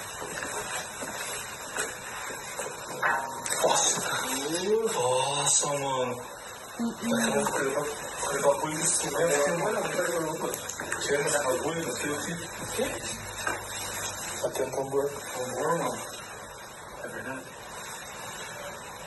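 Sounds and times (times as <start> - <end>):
men talking: 3.4 - 6.4, 7.0 - 13.4, 14.3 - 16.2.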